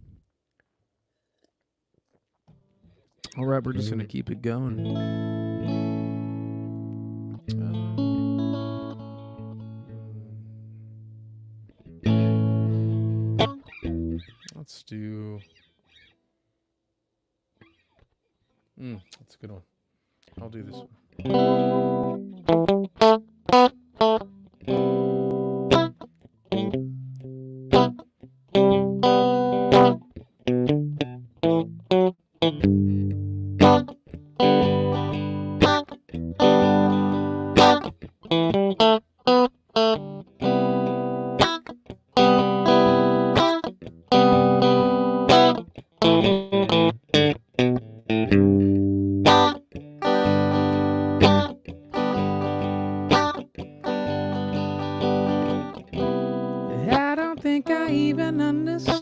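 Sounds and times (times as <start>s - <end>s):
electric guitar strumming chords: 3.2s - 14.6s, 20.6s - 59.0s.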